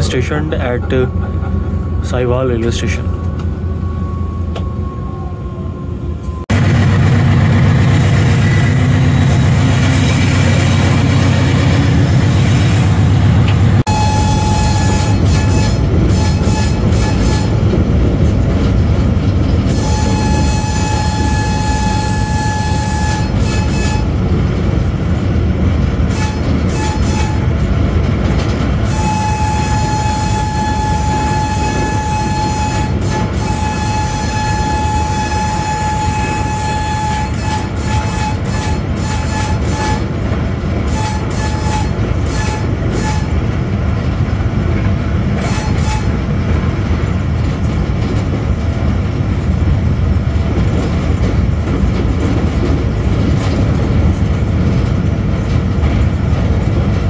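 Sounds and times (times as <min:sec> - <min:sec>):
locomotive engine rumble: 0:00.0 - 0:57.0.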